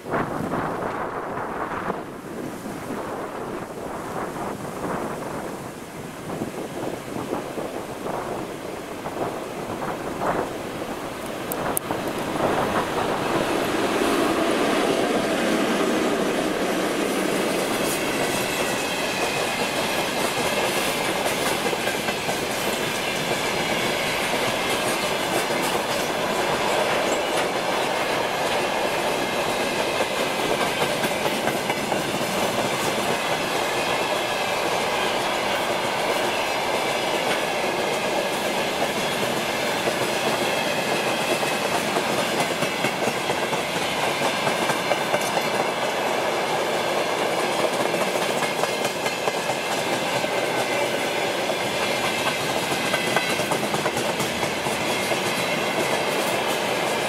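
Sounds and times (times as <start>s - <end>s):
train wheels clattering over rails: 6.4s - 57.0s.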